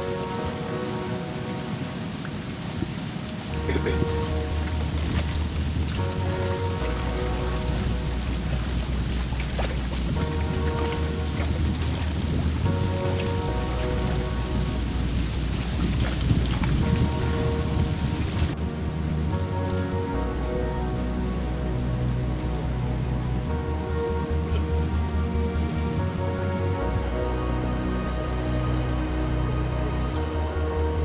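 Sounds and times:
slow held chords over bass: 3.5s - 31.0s.

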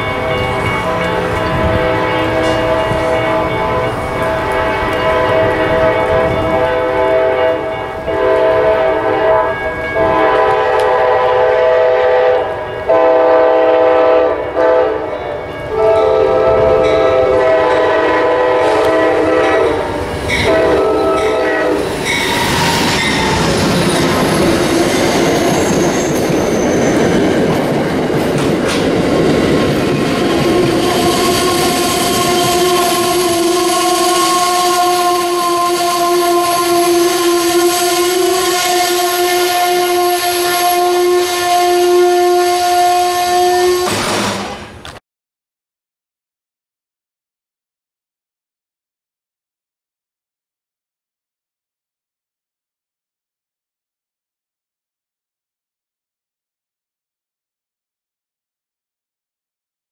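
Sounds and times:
train wheels on rails: 0.0s - 13.3s, 15.2s - 45.0s
train horn blasts: 0.0s - 23.7s, 30.2s - 44.6s
train brakes squealing: 20.2s - 27.4s, 29.9s - 39.6s.

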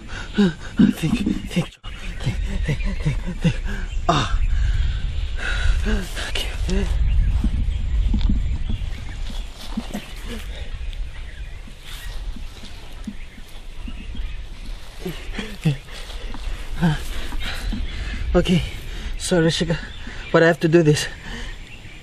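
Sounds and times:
man grunting and muttering: 0.0s - 4.6s, 5.4s - 7.0s, 9.8s - 10.7s, 14.8s - 18.8s
low rumble: 0.0s - 20.3s.

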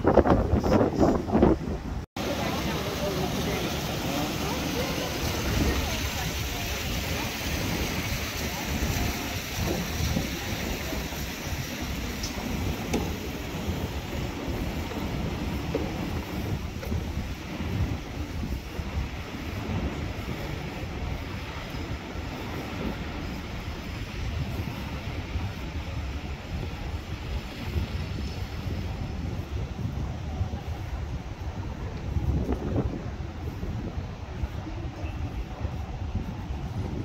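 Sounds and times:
city background noise: 0.0s - 37.0s
wind on microphone: 0.0s - 37.0s.

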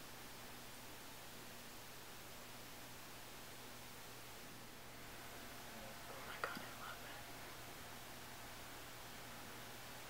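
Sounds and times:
low steady hiss: 0.0s - 10.0s
person whispering: 5.8s - 7.4s.

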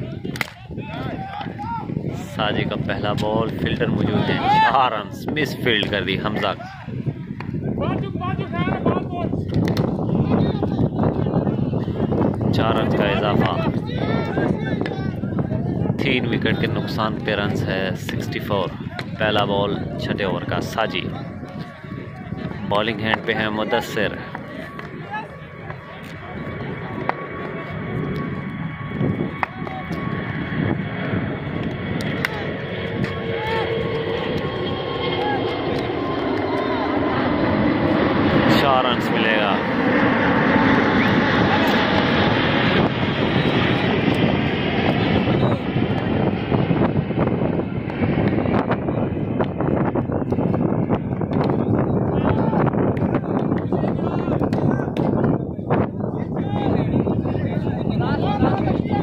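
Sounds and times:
voices in background: 0.0s - 49.4s, 51.5s - 59.0s
loud engine roar with whine: 0.0s - 59.0s.

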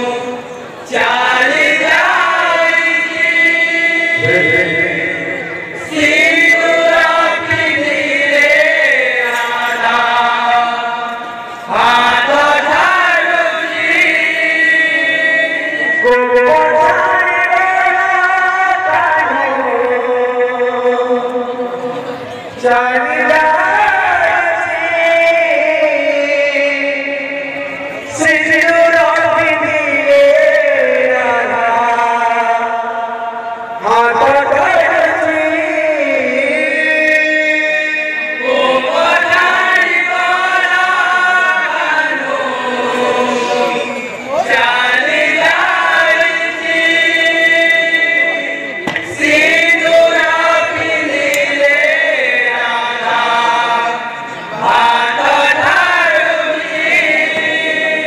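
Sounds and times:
men singing devotional song: 0.0s - 21.9s, 22.5s - 58.0s.

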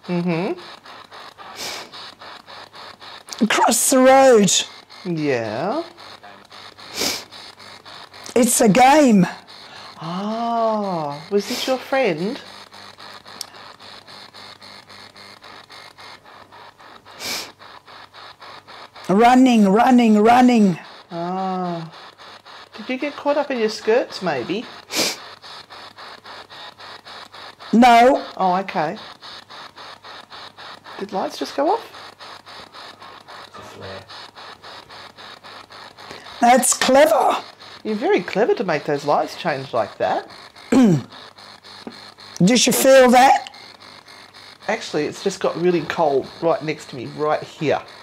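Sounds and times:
rapid chopping radio static: 0.0s - 48.0s
sharp burst of noise: 0.0s - 48.0s
burst of hiss: 1.4s - 2.4s, 6.8s - 7.4s, 16.5s - 17.7s, 23.5s - 27.7s.

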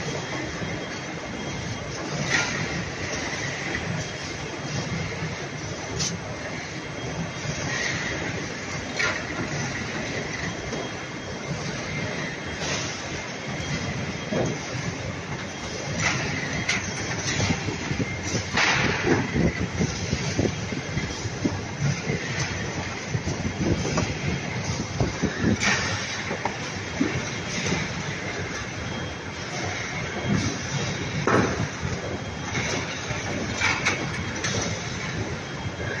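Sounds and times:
machine clatter of rollers and belts: 0.0s - 36.0s.

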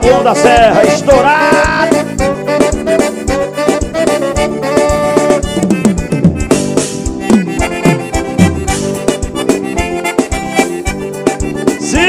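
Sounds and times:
accordion: 0.0s - 12.0s
bass: 0.0s - 12.0s
drum beat: 0.0s - 12.0s.

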